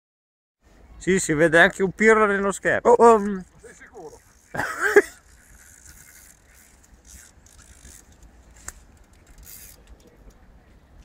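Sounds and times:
fishing reel being cranked: 3.1s - 10.1s.

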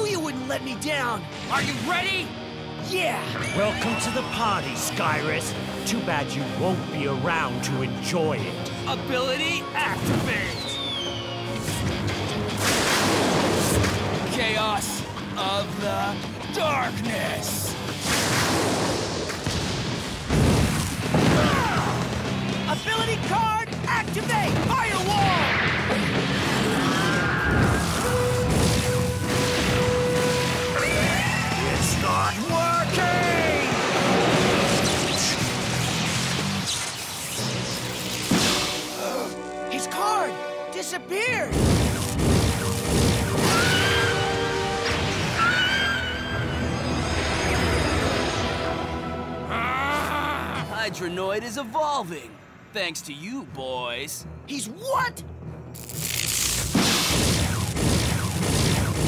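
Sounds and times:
dramatic background music: 0.0s - 51.4s, 53.4s - 59.0s
rumbling and crashing battle effects: 11.6s - 15.0s, 17.9s - 39.0s, 41.5s - 49.1s, 56.3s - 59.0s
wavering vocal cry: 49.5s - 50.8s.

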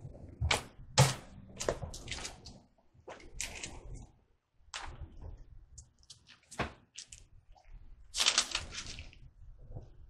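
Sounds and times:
book pages being turned: 4.8s - 9.3s.

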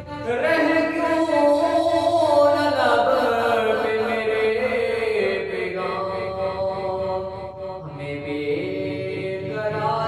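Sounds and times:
man singing devotional song: 0.0s - 10.0s.

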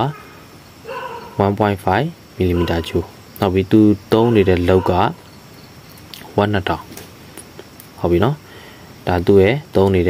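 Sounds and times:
man speaking: 0.0s - 0.2s, 1.4s - 5.2s, 6.2s - 6.9s, 8.0s - 8.4s, 9.0s - 10.0s
faint background noise: 0.0s - 10.0s.

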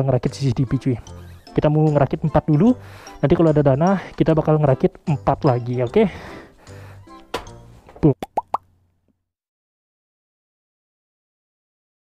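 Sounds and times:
cartoon pops rising in pitch: 8.2s - 8.6s.

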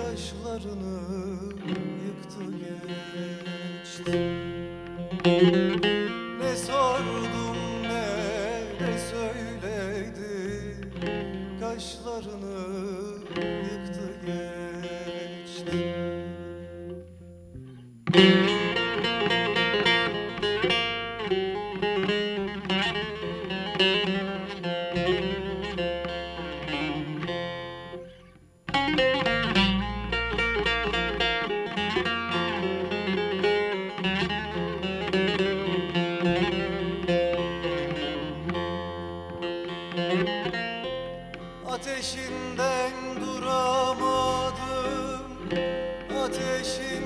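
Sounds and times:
long-necked lute plucked melody: 0.0s - 47.0s.

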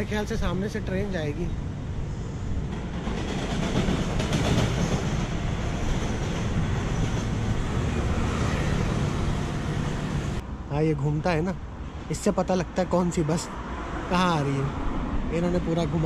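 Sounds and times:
train wheels on rails: 2.0s - 10.4s.

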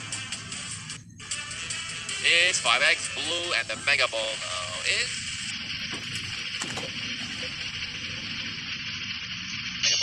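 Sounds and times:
lottery machine blower hissing: 4.6s - 9.6s.

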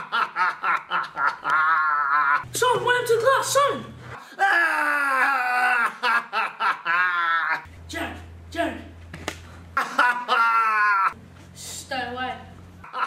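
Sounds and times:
low steady hum: 7.7s - 13.0s.

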